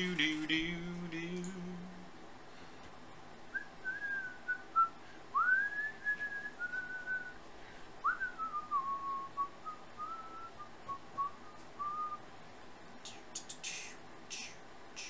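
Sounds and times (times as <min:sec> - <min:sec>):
person whistling a tune: 0:03.6 - 0:07.4, 0:08.0 - 0:12.2.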